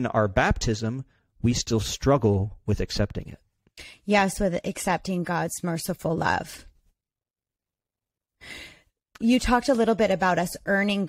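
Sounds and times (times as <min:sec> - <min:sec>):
woman drawing breath: 0:08.4 - 0:08.9.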